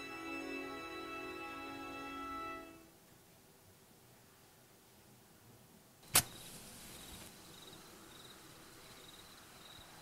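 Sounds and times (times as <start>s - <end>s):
lighter gas hiss: 6.0s - 7.4s
crickets chirping: 6.2s - 10.0s.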